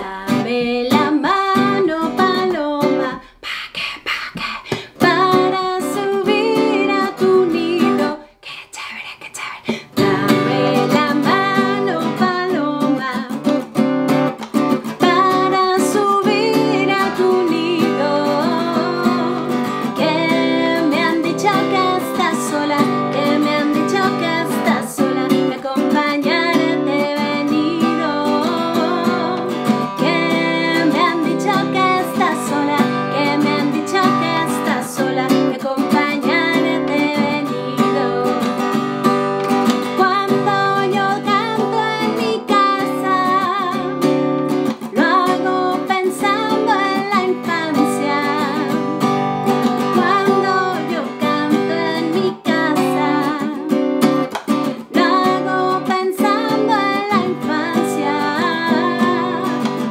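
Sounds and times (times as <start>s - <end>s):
strummed acoustic guitar: 0.0s - 3.2s, 4.7s - 8.2s, 9.8s - 59.9s
woman singing: 0.0s - 59.9s.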